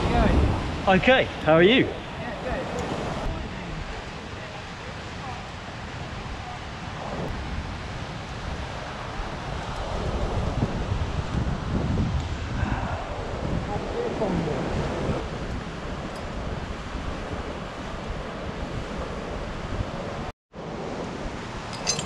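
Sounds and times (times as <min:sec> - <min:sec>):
wind buffeting microphone: 0:00.0 - 0:22.0.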